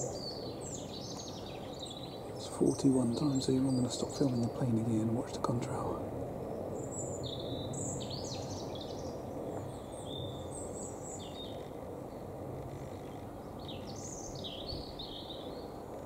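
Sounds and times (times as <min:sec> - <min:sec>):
small birds chirping: 0:00.0 - 0:16.0
steady low rumble: 0:00.0 - 0:16.0.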